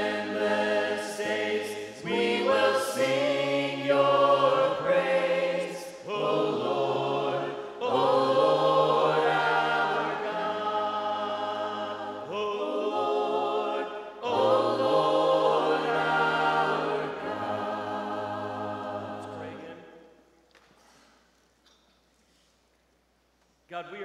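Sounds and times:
group singing a hymn a cappella: 0.0 - 20.1.

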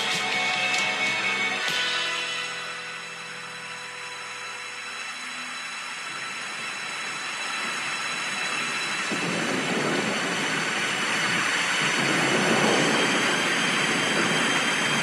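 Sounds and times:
held song notes: 0.0 - 15.0
rushing noise: 0.0 - 15.0.

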